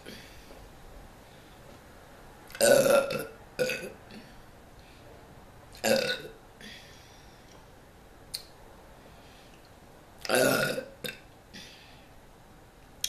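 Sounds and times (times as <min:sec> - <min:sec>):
woman burping loudly: 0:02.5 - 0:04.0, 0:05.8 - 0:06.4, 0:10.3 - 0:11.2.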